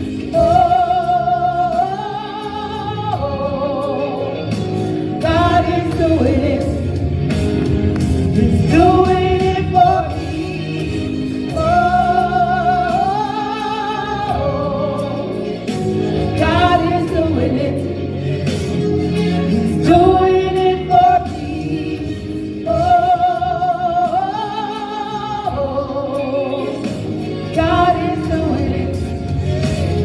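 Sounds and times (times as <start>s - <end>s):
instrumental accompaniment: 0.0s - 30.0s
women singing gospel: 0.0s - 30.0s.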